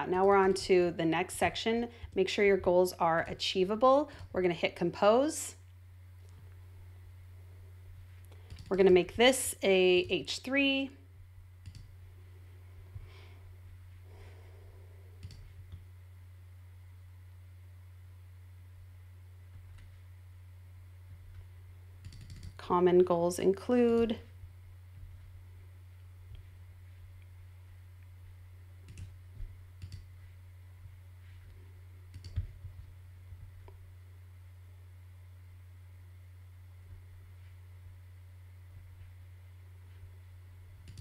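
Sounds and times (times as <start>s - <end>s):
low steady hum: 0.0s - 41.0s
computer mouse clicks: 8.3s - 8.7s, 11.6s - 11.9s, 15.2s - 15.8s, 28.9s - 29.2s, 29.8s - 30.1s, 32.1s - 32.6s.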